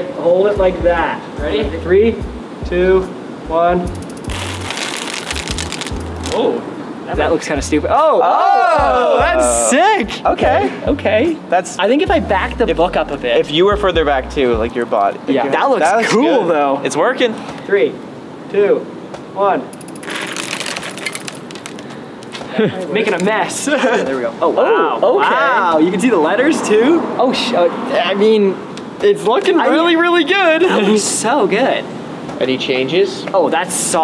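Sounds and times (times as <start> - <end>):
background music with steady beat: 0.4 - 6.4, 7.2 - 8.0, 8.8 - 11.4, 12.0 - 15.0
dry pasta pattering onto paper: 4.3 - 6.4, 20.0 - 22.4.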